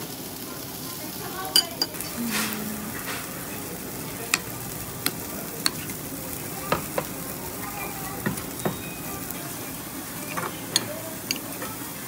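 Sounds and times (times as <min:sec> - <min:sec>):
meat sizzling on a grill: 0:00.0 - 0:12.0
metal spoon clinking ceramic bowl: 0:10.3 - 0:11.6.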